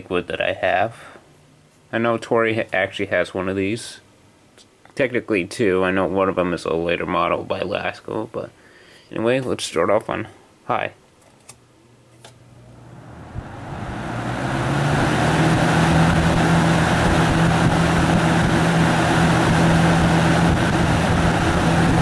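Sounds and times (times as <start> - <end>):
box fan running: 11.4 - 22.0.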